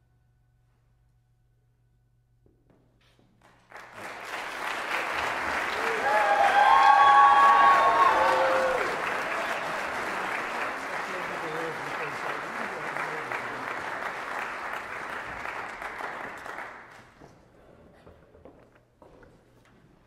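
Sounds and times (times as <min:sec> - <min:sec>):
audience applauding: 0:03.4 - 0:17.2
voices cheering: 0:05.4 - 0:13.1.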